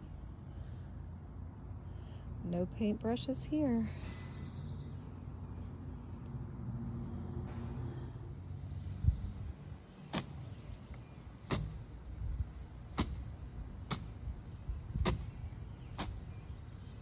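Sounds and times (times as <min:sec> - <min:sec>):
branch slapping canvas: 0:10.0 - 0:12.0, 0:12.9 - 0:14.2, 0:15.0 - 0:16.3.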